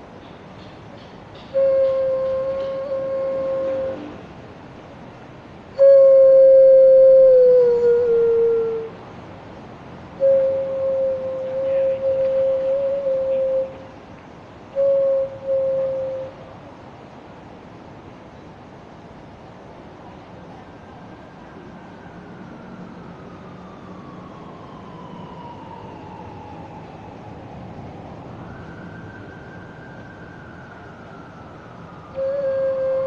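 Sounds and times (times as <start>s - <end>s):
clay vessel flute notes: 1.5s - 4.2s, 10.2s - 13.8s, 14.7s - 16.4s, 32.1s - 33.0s.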